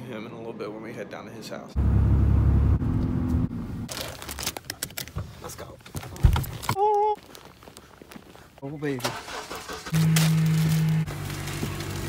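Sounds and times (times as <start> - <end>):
plastic bag crinkling: 3.9 - 5.1.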